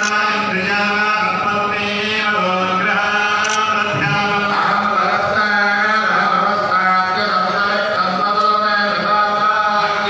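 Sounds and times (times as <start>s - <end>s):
priests chanting together: 0.2s - 10.0s.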